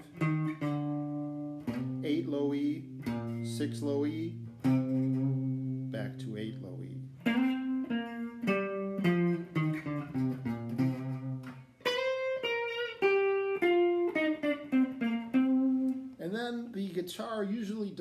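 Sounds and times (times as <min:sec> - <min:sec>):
electric guitar blues line: 0:00.0 - 0:17.0.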